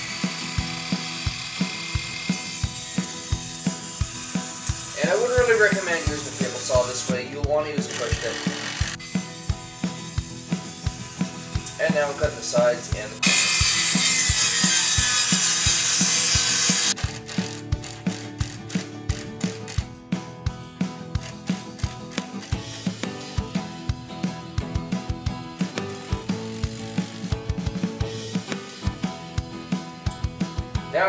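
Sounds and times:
table saw ripping wood: 0.0 - 11.9, 13.2 - 19.8, 25.6 - 27.4
music with steady drum beat: 0.0 - 31.0.

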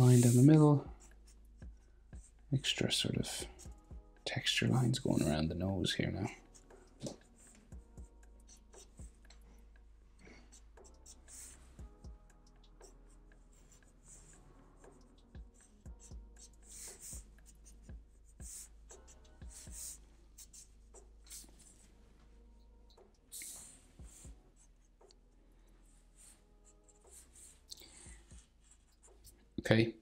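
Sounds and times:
marker pen scratching on paper: 0.0 - 2.5, 6.2 - 9.4, 10.4 - 12.0, 12.6 - 21.9, 23.3 - 25.2, 26.2 - 29.5.

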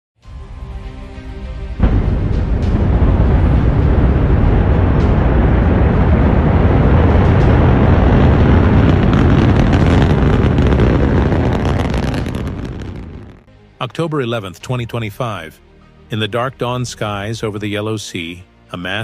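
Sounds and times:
rocket lifting off rumble: 1.8 - 13.5.

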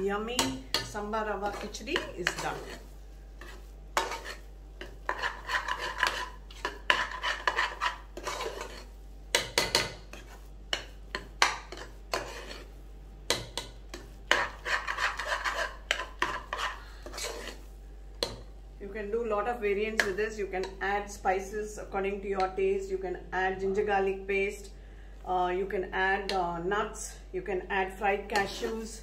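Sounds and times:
metal spoon scraping a pot: 0.4 - 12.7, 13.3 - 18.4, 28.4 - 29.0.

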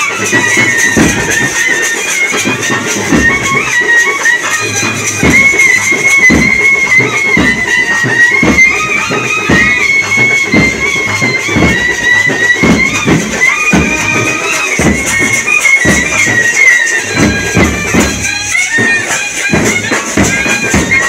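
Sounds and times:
drums beating steady rhythm: 0.0 - 21.0
reedy wind instrument melody: 0.0 - 21.0.

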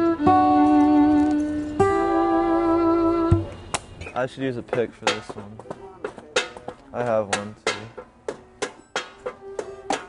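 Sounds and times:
instrument holding long notes: 0.0 - 3.6.

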